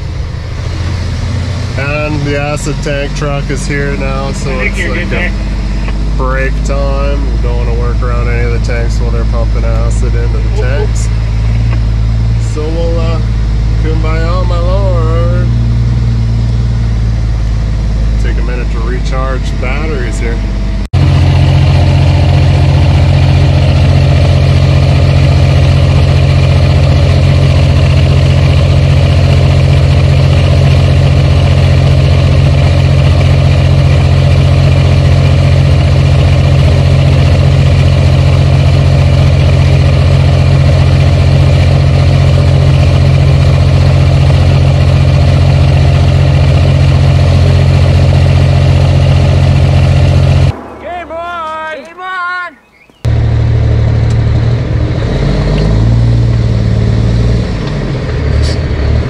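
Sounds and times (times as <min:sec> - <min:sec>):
diesel truck engine idling: 0:00.0 - 0:55.0.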